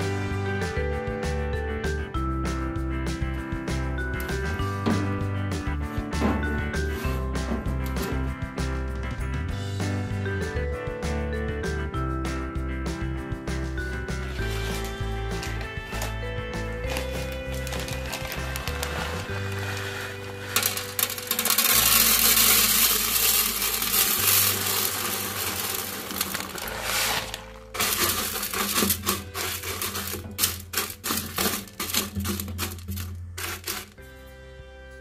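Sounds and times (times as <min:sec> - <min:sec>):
background music: 0:00.0 - 0:35.0
stones rattling into plastic tub: 0:14.2 - 0:34.0
small stones clicking and tapping: 0:16.8 - 0:34.0.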